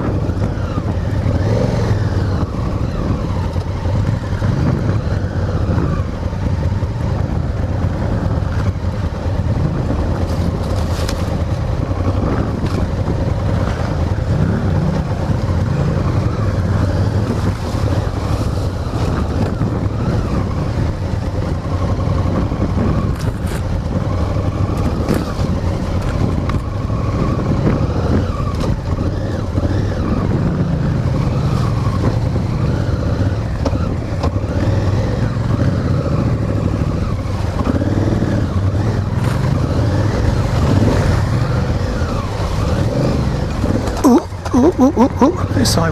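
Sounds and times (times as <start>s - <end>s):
motorcycle engine revving: 0.0s - 45.9s
wind noise on microphone: 0.0s - 45.9s.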